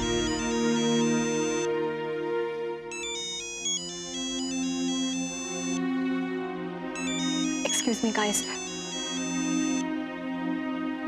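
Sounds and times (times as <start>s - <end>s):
phone ringtone melody: 0.0s - 1.7s, 2.9s - 5.9s, 7.0s - 9.8s
background music: 0.0s - 11.0s.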